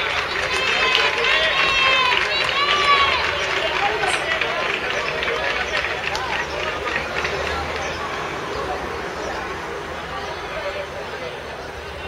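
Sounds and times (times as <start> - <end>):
high-pitched shouts and calls: 0.0 - 9.6
general hubbub: 0.0 - 12.0.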